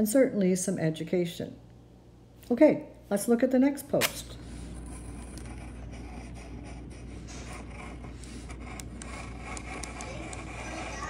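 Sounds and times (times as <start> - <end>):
low steady hum: 0.0 - 11.0
pencil scratching on paper: 4.6 - 11.0.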